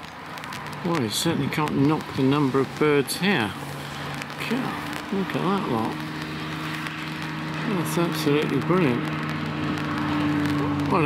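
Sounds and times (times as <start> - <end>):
outdoor background noise: 0.0 - 11.0
man speaking: 0.8 - 3.6, 4.4 - 6.0, 7.6 - 9.1, 10.6 - 11.0.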